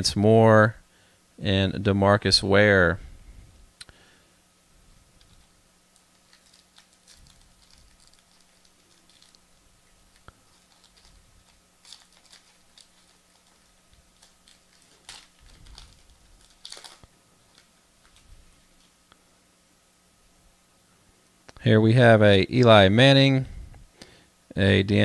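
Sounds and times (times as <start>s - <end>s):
trading cards clicking and rustling: 5.2s - 18.9s.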